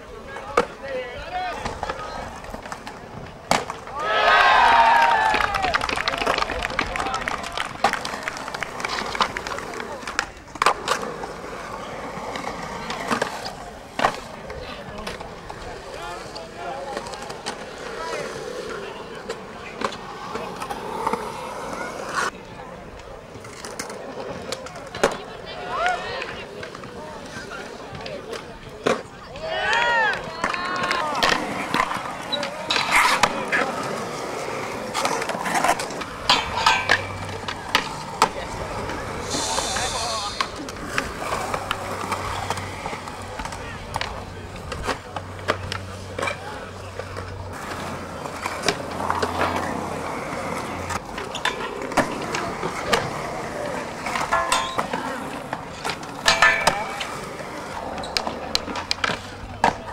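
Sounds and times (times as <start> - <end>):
skateboard wheels rolling on concrete: 0.0 - 59.9
skateboard knocking on concrete: 1.5 - 15.7, 22.9 - 59.9
skateboard clacking on metal handrail: 34.9 - 39.4, 54.0 - 57.4.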